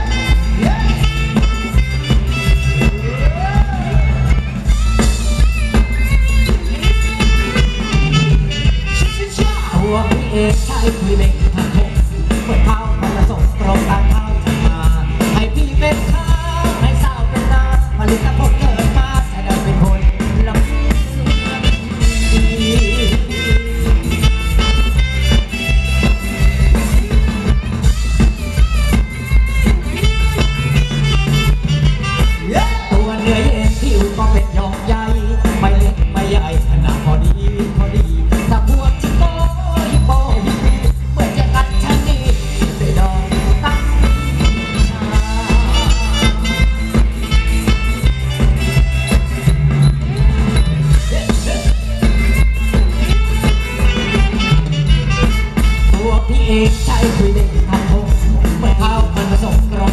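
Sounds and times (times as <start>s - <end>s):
fast drum beat: 0.0s - 59.9s
live band playing dance music: 0.0s - 59.9s.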